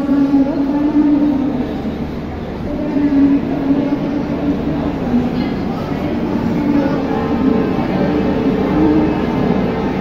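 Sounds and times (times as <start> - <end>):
train droning at platform: 0.0 - 10.0.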